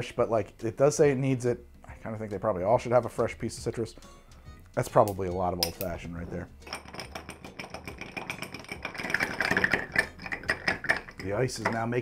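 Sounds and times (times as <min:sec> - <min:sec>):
ice clinking in a glass: 0:06.6 - 0:11.8.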